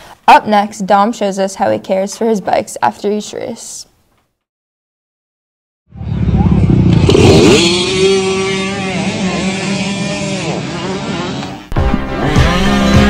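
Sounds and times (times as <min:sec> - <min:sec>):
dirt bike engine revving: 0:06.0 - 0:13.0.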